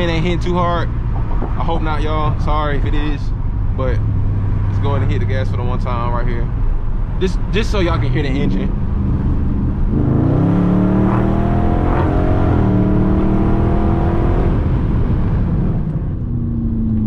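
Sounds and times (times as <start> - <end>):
car engine revving at full throttle: 0.0 - 17.0.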